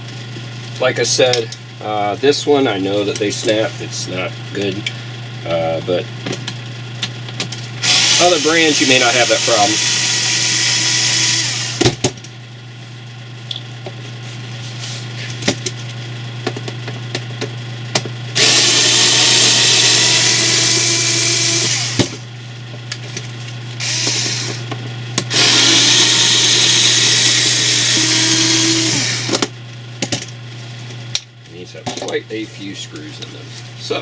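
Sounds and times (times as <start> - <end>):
cordless screwdriver running: 7.8 - 11.8, 18.4 - 22.1, 23.8 - 24.6, 25.3 - 29.4.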